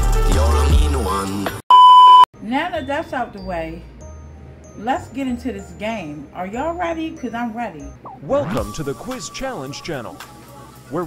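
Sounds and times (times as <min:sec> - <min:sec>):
music: 0:00.0 - 0:01.6, 0:02.4 - 0:11.0
electronic censor bleep: 0:01.7 - 0:02.3
woman talking: 0:02.4 - 0:03.9, 0:04.8 - 0:08.0.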